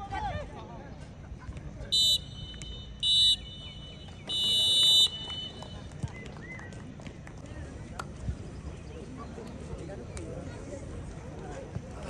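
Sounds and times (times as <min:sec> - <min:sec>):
referee's whistle blasts: 0:01.9 - 0:05.9.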